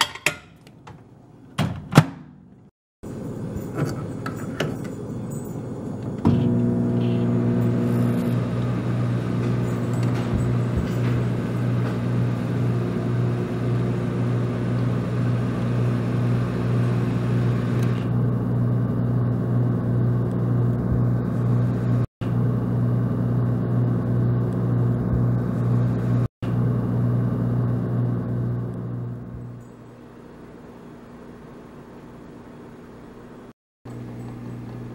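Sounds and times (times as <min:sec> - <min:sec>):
microwave oven humming: 0:04.8 - 0:34.9.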